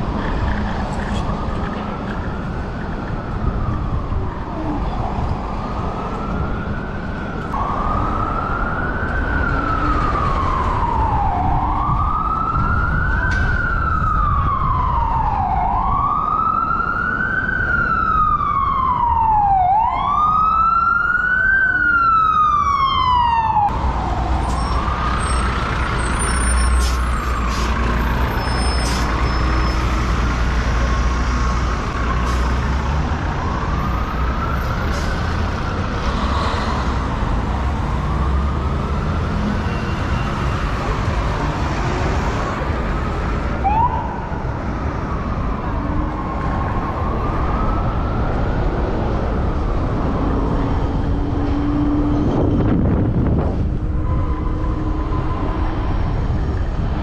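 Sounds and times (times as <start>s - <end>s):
city traffic rumble: 0.0s - 57.0s
emergency vehicle siren wailing: 0.0s - 57.0s.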